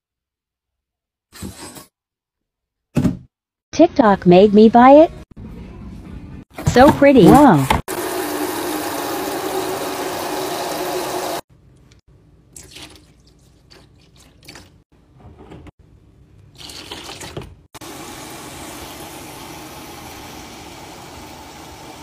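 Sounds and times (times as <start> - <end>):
tap water running into bucket: 7.9 - 11.4.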